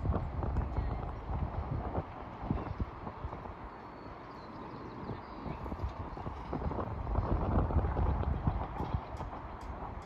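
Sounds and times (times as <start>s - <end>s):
chairlift low rumble: 0.0s - 10.0s.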